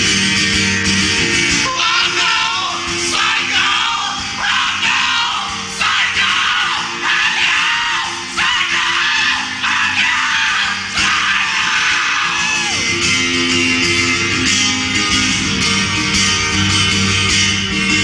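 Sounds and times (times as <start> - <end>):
acoustic guitar strummed: 0.0 - 18.0
man singing loudly: 1.7 - 12.7.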